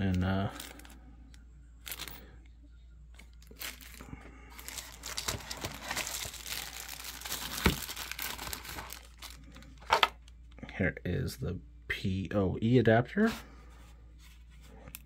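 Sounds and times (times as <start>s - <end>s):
plastic packaging crinkling: 3.3s - 10.2s.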